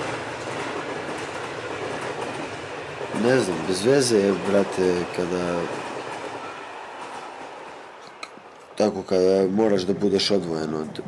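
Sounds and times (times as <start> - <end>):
moving passenger train interior: 0.0 - 11.0.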